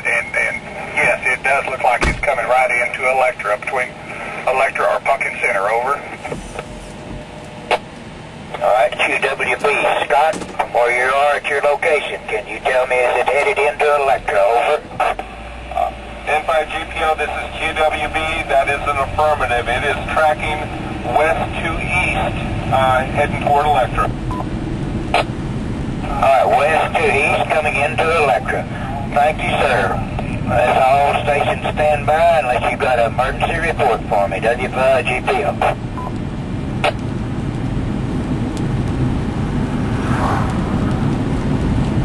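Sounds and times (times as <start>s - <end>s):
two-way radio beep: 0.0s - 2.0s, 26.1s - 36.2s
radio chirp: 0.0s - 6.7s, 8.5s - 24.5s, 26.0s - 36.2s
road and engine noise: 0.0s - 42.0s
vehicle cabin rumble: 0.0s - 42.0s.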